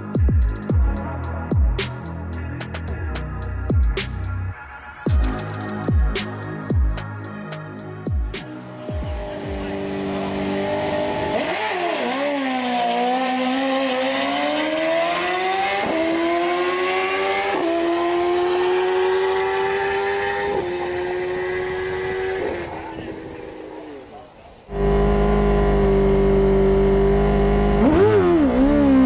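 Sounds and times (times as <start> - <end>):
motorcycle engine revving: 8.4 - 29.0.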